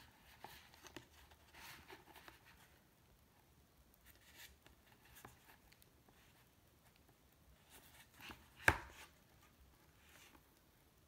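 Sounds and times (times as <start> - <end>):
soft rustles of book handling: 0.0 - 11.0.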